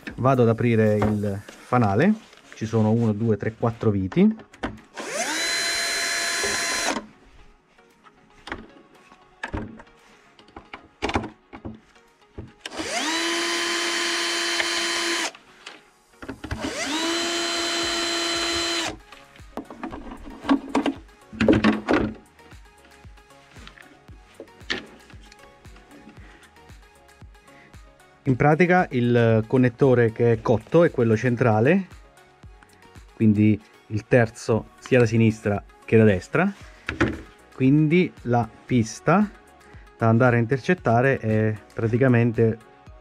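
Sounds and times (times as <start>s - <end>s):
cordless drill running: 4.9s - 7.0s, 12.7s - 15.4s, 16.6s - 19.0s.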